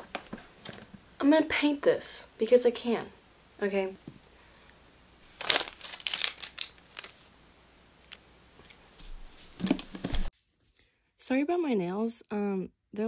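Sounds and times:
hands rustling against clothing: 0:05.3 - 0:07.3.

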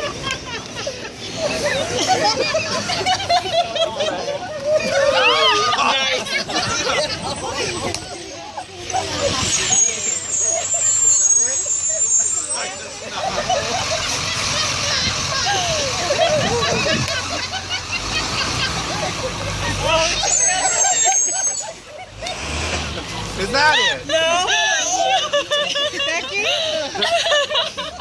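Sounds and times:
people laughing and talking: 0:00.0 - 0:28.0
vehicle traffic passing: 0:00.0 - 0:28.0.

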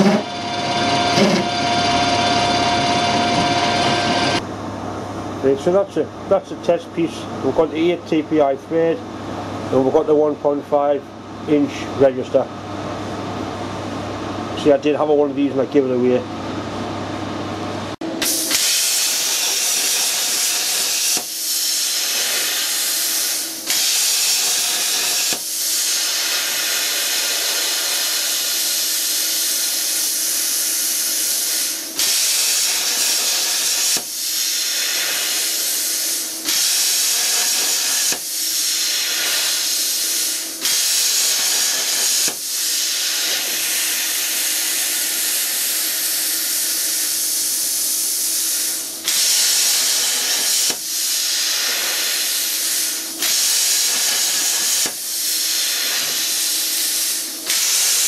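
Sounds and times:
plasma cutter hissing: 0:18.2 - 0:58.0.

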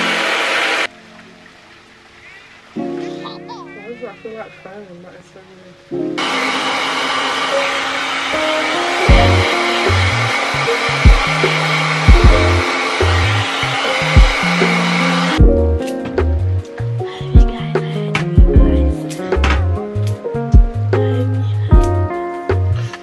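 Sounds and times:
hair dryer blowing: 0:00.0 - 0:00.9, 0:06.2 - 0:15.4
background music with bass beat: 0:09.1 - 0:10.3, 0:11.0 - 0:11.5, 0:12.1 - 0:13.4, 0:14.1 - 0:14.7, 0:15.3 - 0:23.0.

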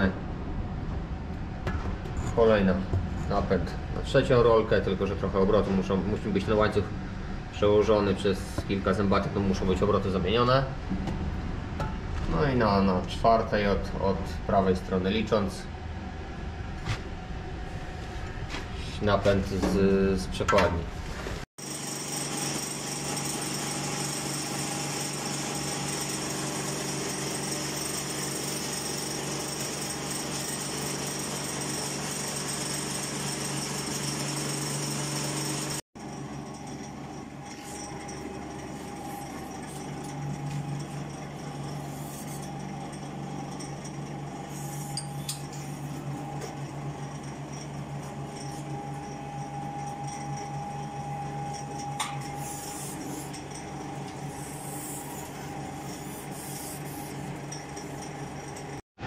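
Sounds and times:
pipe bending machine running: 0:21.6 - 0:58.8.

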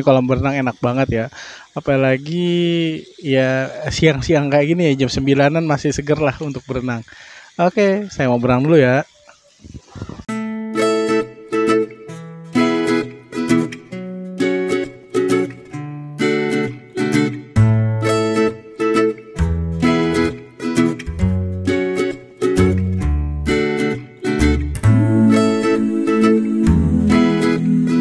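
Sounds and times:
upbeat plucked-string music: 0:10.3 - 0:28.0
bass part: 0:22.6 - 0:23.6, 0:24.4 - 0:25.6, 0:26.6 - 0:28.0.

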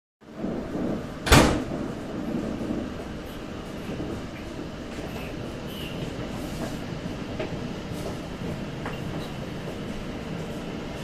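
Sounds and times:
train running rumble: 0:00.2 - 0:11.0
sharp loud knock: 0:01.2 - 0:01.9.

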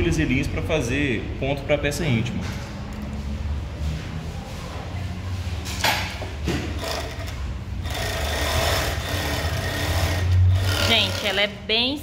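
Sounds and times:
sewing machine humming: 0:06.8 - 0:11.5.

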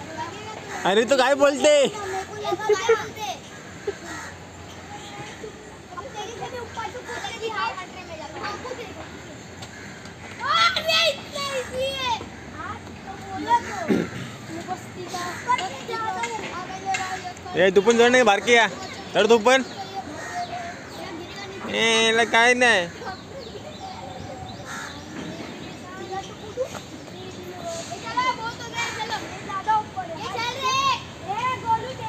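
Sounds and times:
birds calling: 0:00.0 - 0:32.0
children shouting while playing: 0:00.1 - 0:25.2, 0:28.0 - 0:32.0.

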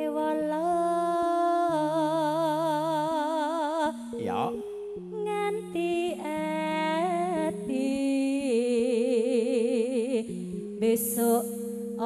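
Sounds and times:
person singing a long note: 0:04.2 - 0:04.6
held keyboard notes: 0:04.2 - 0:08.9.

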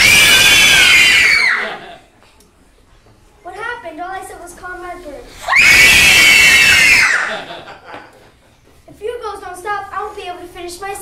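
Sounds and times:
children screaming: 0:00.0 - 0:02.0, 0:05.4 - 0:07.6.

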